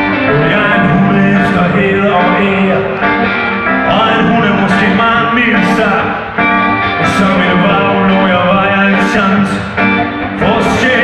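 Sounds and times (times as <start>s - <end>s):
electric guitars: 0.0s - 11.0s
keyboard: 0.0s - 11.0s
man singing lead vocal: 0.0s - 11.0s
rock band playing: 0.0s - 11.0s.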